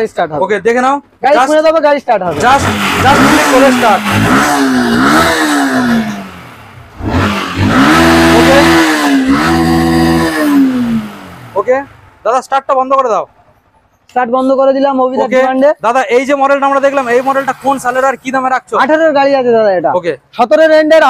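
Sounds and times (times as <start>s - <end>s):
motorcycle engine revving: 2.2s - 12.2s, 16.4s - 18.8s.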